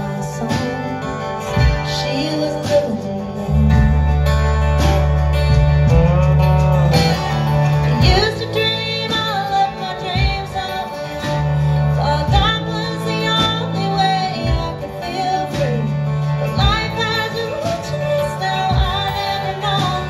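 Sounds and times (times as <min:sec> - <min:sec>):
woman singing: 0:00.0 - 0:05.1, 0:07.8 - 0:20.0
lap steel guitar: 0:00.0 - 0:20.0
deep held bass notes: 0:03.2 - 0:09.1.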